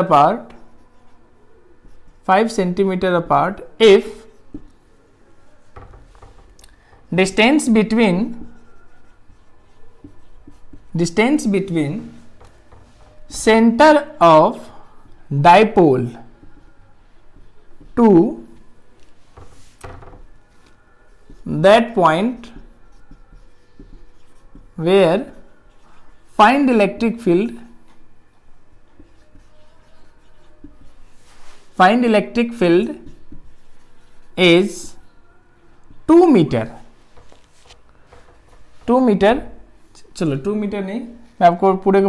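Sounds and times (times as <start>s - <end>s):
marker scratching on whiteboard: 0.0s - 40.5s.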